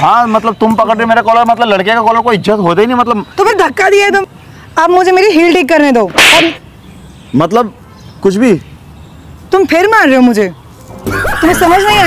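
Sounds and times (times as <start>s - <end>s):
hand smack crack: 6.1s - 6.6s.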